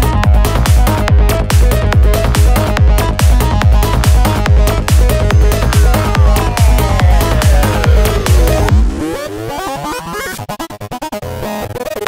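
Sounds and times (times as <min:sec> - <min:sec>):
electronic synth lines: 0:04.1 - 0:09.6
rapid stuttering sound: 0:04.4 - 0:09.4.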